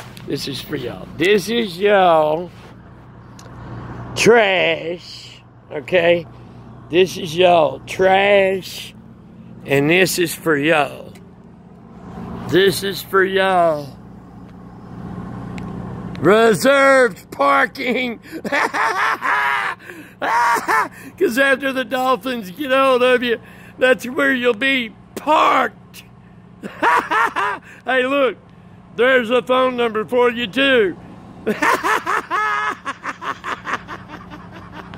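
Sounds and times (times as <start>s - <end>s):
diesel engine idling: 0.0s - 34.9s
man laughing: 17.8s - 21.2s, 26.6s - 27.9s, 31.4s - 34.9s.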